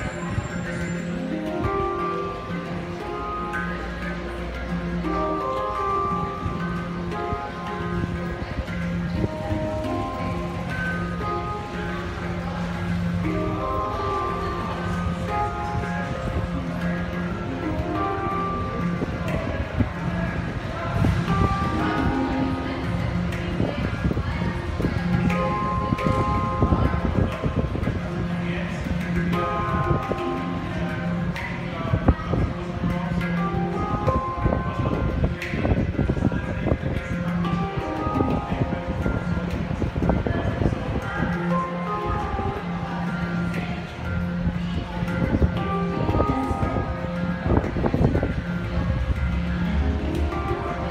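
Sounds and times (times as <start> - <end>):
handpan notes ringing: 0.0 - 50.9.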